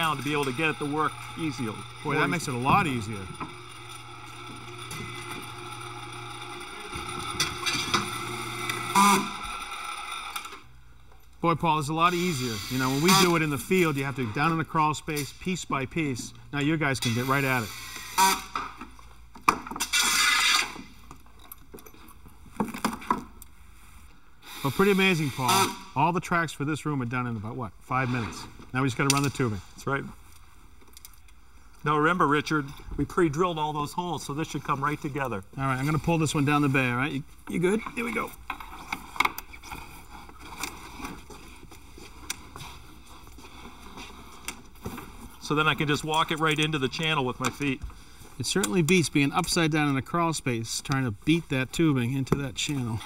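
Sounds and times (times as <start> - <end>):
cordless drill driving screws: 0.0 - 10.6, 12.1 - 13.6, 17.0 - 18.6, 19.8 - 20.9, 24.4 - 25.9.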